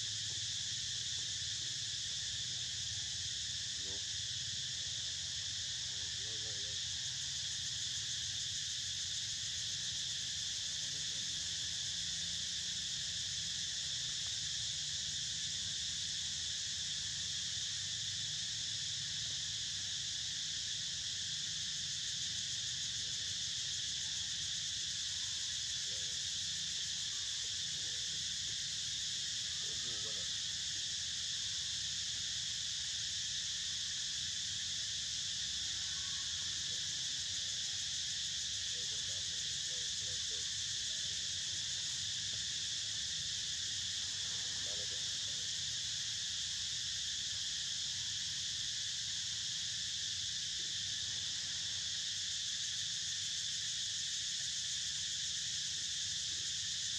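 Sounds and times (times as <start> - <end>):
insect chorus buzzing: 0.0 - 56.9.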